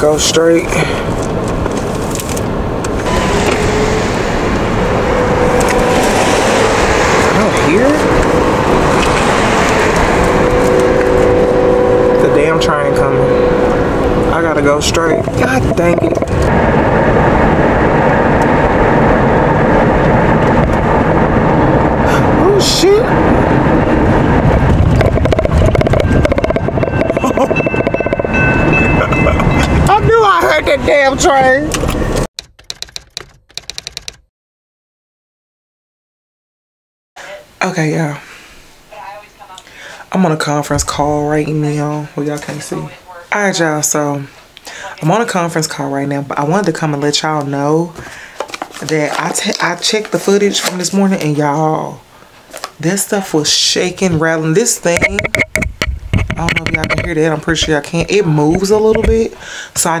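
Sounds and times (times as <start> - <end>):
rumble inside moving car: 1.1 - 32.3, 55.0 - 59.3
train horn: 3.0 - 16.2.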